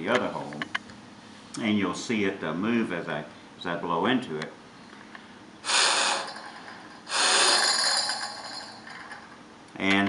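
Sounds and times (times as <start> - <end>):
man blowing into air tube: 5.6 - 8.7.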